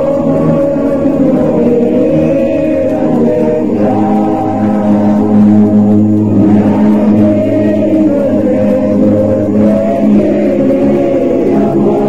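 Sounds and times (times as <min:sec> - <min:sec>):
choir singing a slow hymn: 0:00.0 - 0:12.0.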